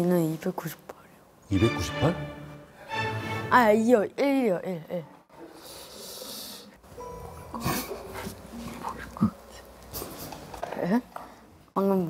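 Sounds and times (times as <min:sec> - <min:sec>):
adults whispering: 0:07.6 - 0:09.8.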